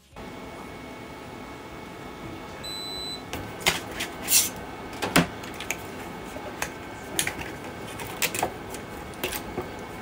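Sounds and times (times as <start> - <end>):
printer humming: 0.1 - 10.0
electronic beep: 2.6 - 3.2.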